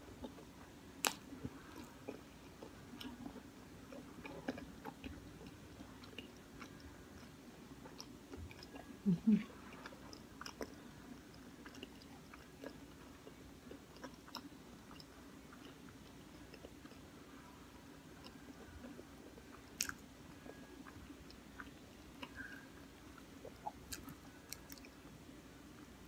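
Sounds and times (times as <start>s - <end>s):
chewing pizza: 0.0s - 25.1s
faint steady hum: 0.0s - 26.0s.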